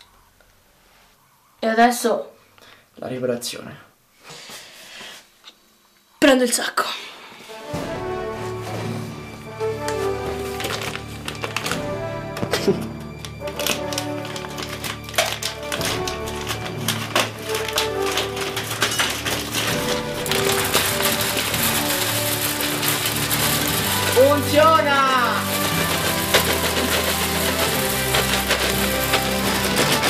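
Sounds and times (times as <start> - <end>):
background music: 7.4 - 30.0
wood pellets pouring into hopper: 7.6 - 30.0.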